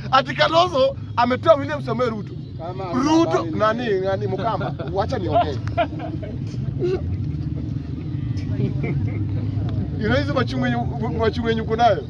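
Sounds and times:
faint voices: 0.0s - 12.0s
low engine hum: 0.0s - 12.0s.

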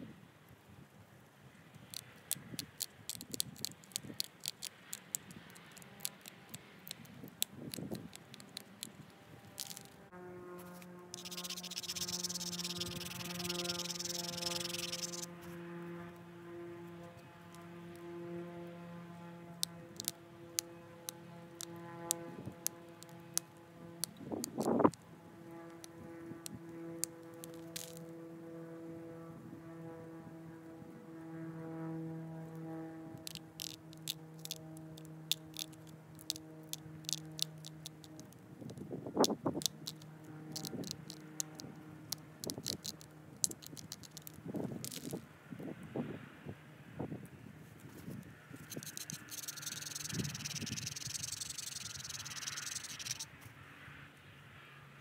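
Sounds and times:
steady droning hum: 1.3s - 45.5s, 46.4s - 53.3s
stone flakes clicking off: 1.9s - 10.0s, 11.2s - 15.3s, 20.0s - 25.0s, 27.3s - 28.0s, 33.2s - 45.2s, 48.6s - 53.2s.

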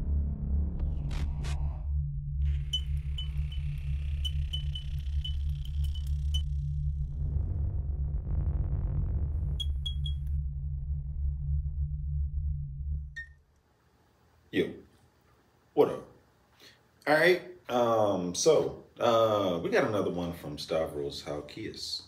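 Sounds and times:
pulsing electronic bass: 0.0s - 13.2s
short high chirps: 2.6s - 6.4s, 9.6s - 10.2s.

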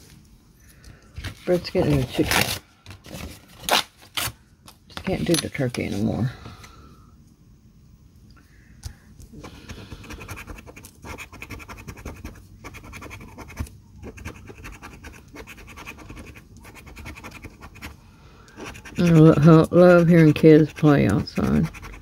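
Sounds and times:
coin scratching lottery ticket: 10.0s - 17.9s, 18.6s - 22.0s.

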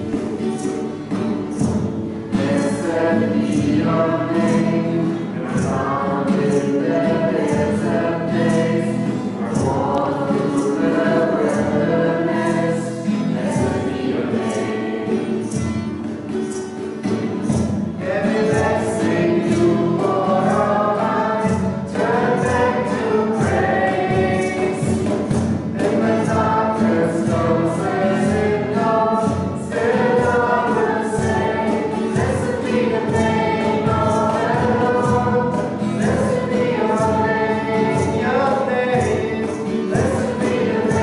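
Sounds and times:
cajon beat: 0.0s - 41.0s
group singing worship song: 0.0s - 41.0s
strummed acoustic guitar: 0.0s - 41.0s.

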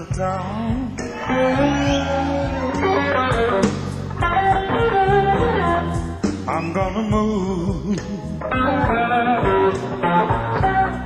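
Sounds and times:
electric blues band playing: 0.0s - 11.0s
person singing: 0.0s - 11.0s
electric guitar bent notes: 1.0s - 11.0s.

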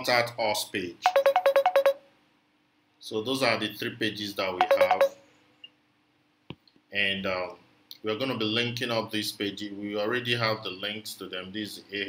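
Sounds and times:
ringtone of alternating notes: 1.0s - 2.0s, 4.6s - 5.2s.

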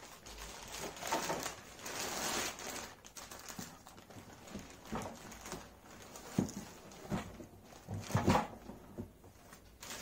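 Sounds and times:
plastic wrapping handled: 0.0s - 10.0s.

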